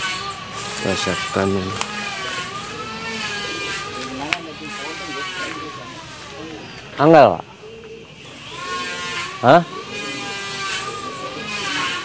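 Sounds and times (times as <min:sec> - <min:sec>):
engine-like drone: 0:00.0 - 0:12.0.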